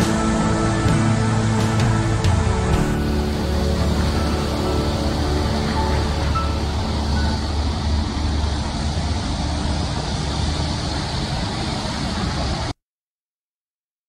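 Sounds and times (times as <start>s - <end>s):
sustained music-like tones: 0.0s - 11.9s
low rumble of slow traffic: 0.0s - 12.8s.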